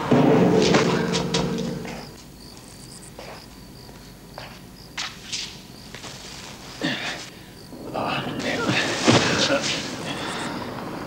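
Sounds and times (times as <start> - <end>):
footsteps: 0.0 - 6.8
faint cricket chirp: 0.4 - 11.0.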